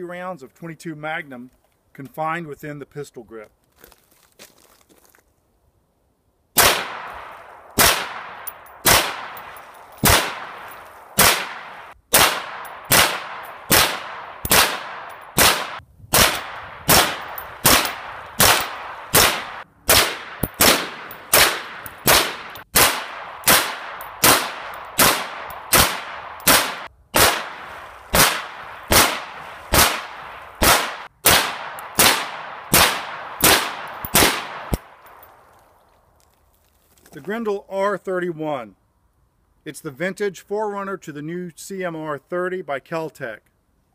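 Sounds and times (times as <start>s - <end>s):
rifle gunshots with echo: 6.6s - 35.2s.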